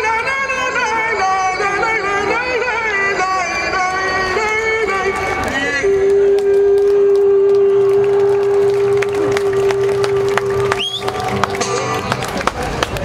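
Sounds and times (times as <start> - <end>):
person singing long note: 0.0 - 10.8
crowd noise: 0.0 - 13.0
people clapping: 4.4 - 13.0
rising whistle: 10.6 - 11.3.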